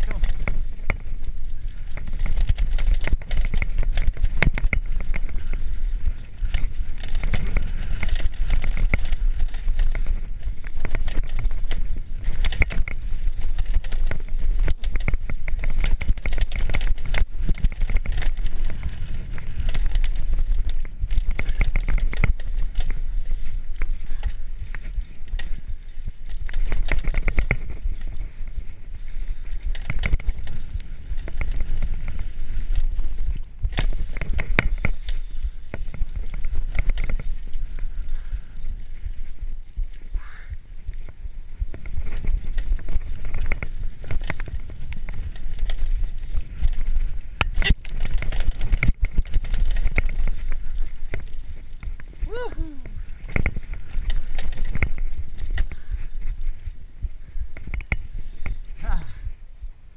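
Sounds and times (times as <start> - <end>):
bike knocking and rattling: 0.0 - 59.6
bike tyres running over dirt: 0.0 - 59.9
wind rumble on microphone: 0.0 - 59.9.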